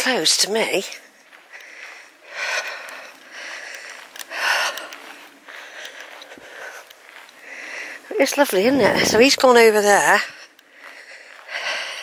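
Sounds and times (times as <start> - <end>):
person breathing: 1.5 - 9.4, 10.4 - 12.0.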